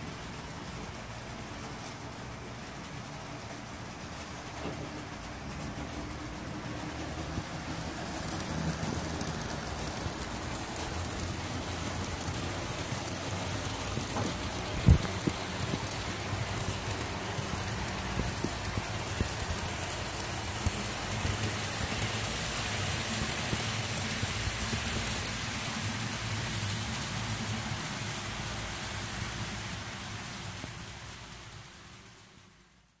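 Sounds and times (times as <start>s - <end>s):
model train rolling rattle: 0.0s - 33.0s.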